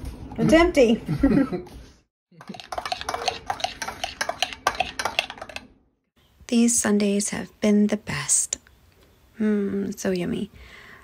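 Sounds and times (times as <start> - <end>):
whisk clinking in ceramic bowl: 2.4 - 5.7.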